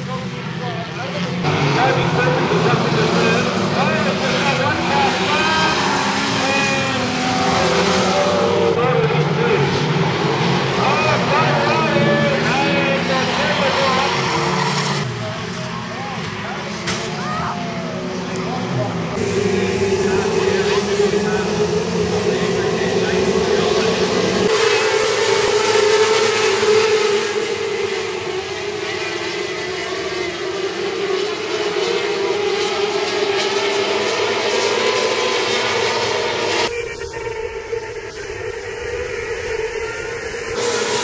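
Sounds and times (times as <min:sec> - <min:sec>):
race car engines on dirt track: 0:00.0 - 0:41.0.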